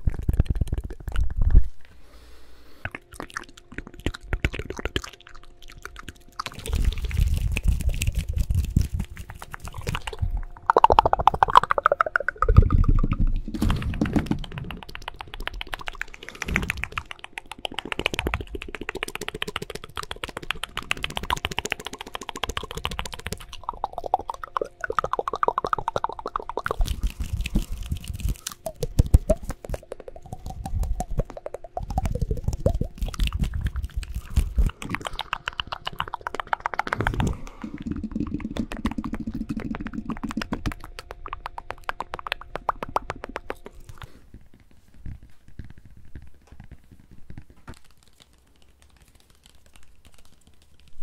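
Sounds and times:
clicking mouth sounds: 0.0s - 2.0s, 2.8s - 51.0s
fingers tapping microphone: 6.4s - 51.0s.

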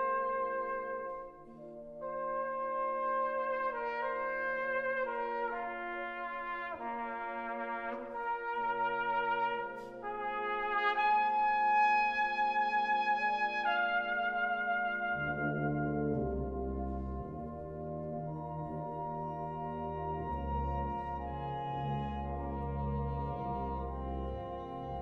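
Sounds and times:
brass band playing chords: 0.0s - 25.0s.

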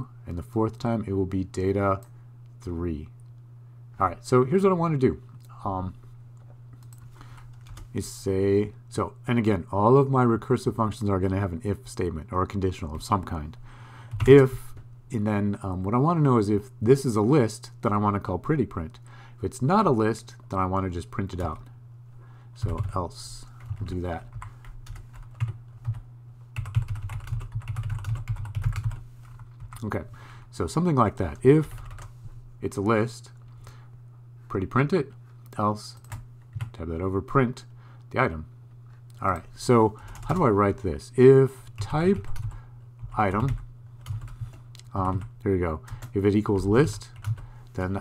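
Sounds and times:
steady low hum: 0.0s - 48.0s
typing on computer keyboard: 23.6s - 26.0s, 26.6s - 29.0s, 42.2s - 44.5s, 47.2s - 47.4s.

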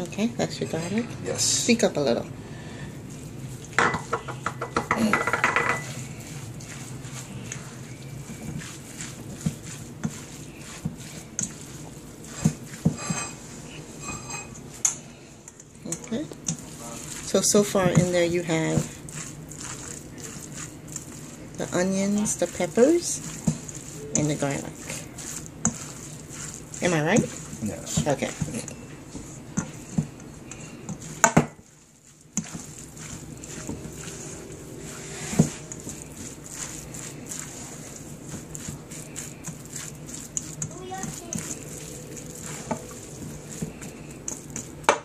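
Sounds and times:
spatula scraping metal bowl: 3.7s - 15.0s, 15.9s - 45.0s.

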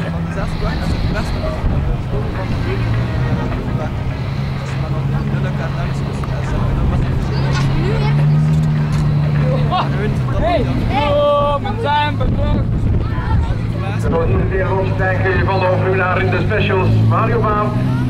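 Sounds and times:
race car engine droning: 0.0s - 18.0s.

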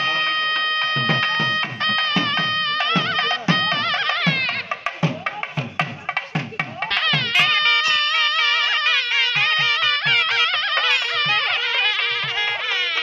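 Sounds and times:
wavering reed melody: 0.0s - 5.0s, 7.0s - 13.0s
drum strokes: 0.0s - 13.0s.

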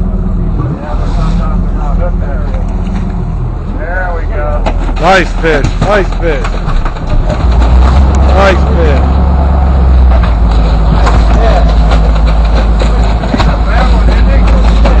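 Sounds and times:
boat engine droning: 0.0s - 15.0s
indistinct voices: 0.0s - 15.0s.

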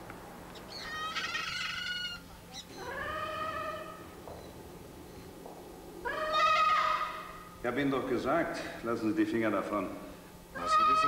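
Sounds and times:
young goat bleating: 0.8s - 2.2s, 6.0s - 7.4s.

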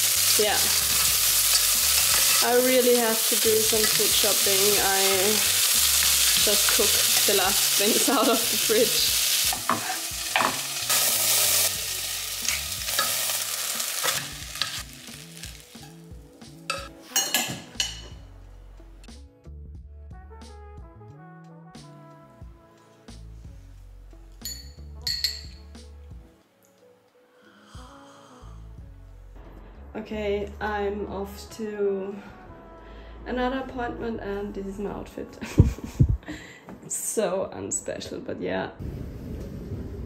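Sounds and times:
vegetables sizzling in a pot: 0.0s - 18.0s.

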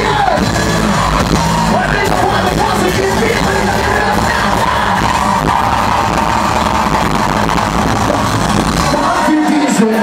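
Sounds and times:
live band playing loud music: 0.0s - 10.0s
vocalist singing into a microphone: 1.7s - 5.4s.

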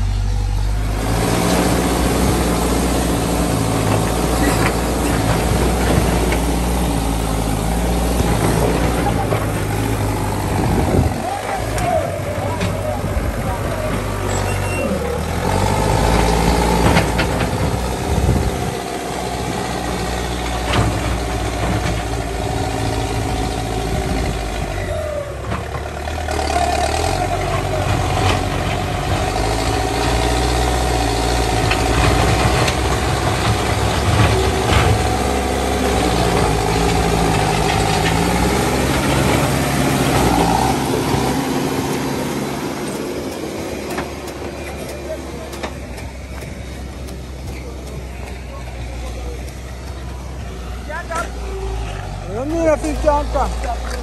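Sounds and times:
backhoe diesel engine working: 0.0s - 54.0s.

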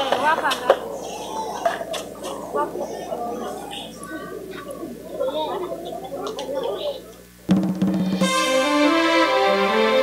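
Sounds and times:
children chattering: 0.0s - 7.5s
musical jingle with drums: 7.5s - 10.0s.

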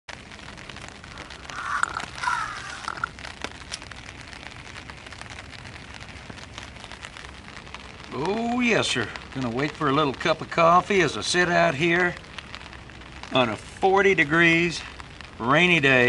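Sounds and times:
rain pattering on a tarp: 0.1s - 16.0s.

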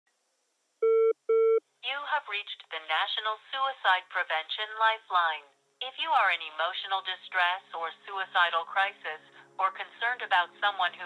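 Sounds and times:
electronic telephone beeps: 0.8s - 1.6s.

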